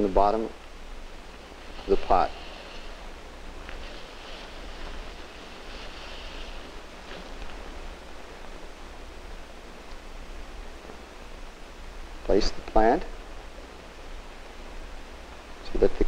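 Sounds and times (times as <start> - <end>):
film soundtrack hiss and hum: 0.0 - 16.0.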